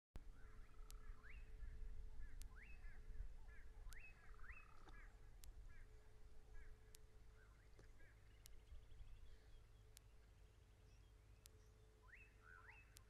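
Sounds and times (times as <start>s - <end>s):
bird calls: 0.2s - 13.0s
faint steady hum: 0.2s - 13.0s.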